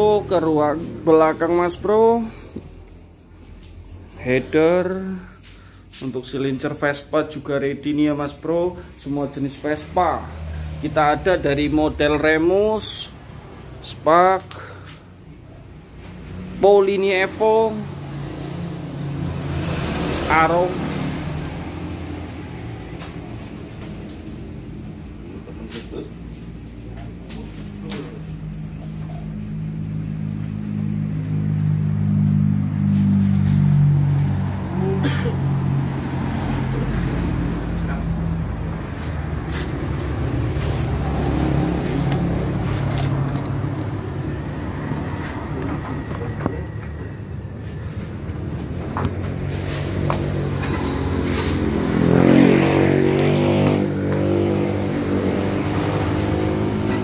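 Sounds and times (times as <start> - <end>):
vehicle accelerating: 0.0 - 57.0
vehicle engine running: 0.0 - 57.0.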